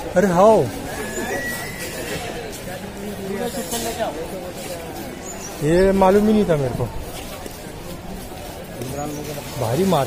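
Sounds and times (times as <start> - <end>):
busy street market noise: 0.0 - 10.0
people talking nearby: 0.0 - 10.0.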